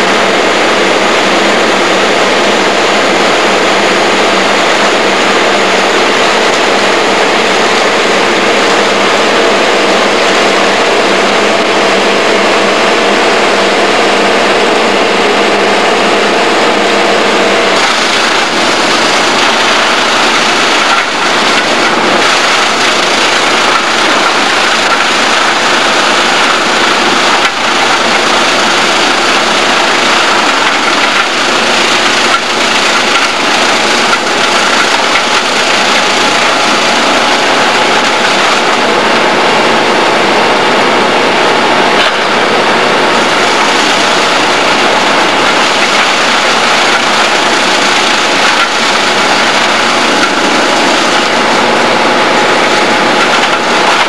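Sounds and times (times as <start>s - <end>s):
heavy diesel machine engine: 0.0s - 54.0s.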